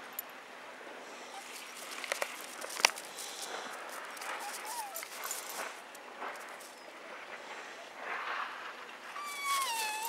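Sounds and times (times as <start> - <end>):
dog whining: 4.2 - 5.4, 9.2 - 10.0.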